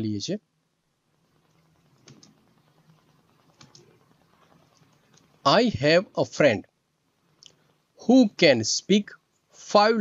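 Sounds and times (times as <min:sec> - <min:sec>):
computer keys clicking: 0:01.5 - 0:05.3.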